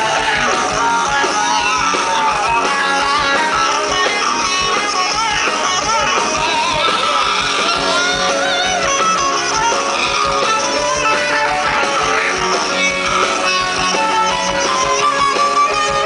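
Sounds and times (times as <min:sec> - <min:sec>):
electric guitar lead line: 0:00.0 - 0:16.0
live rock band playing: 0:00.0 - 0:16.0.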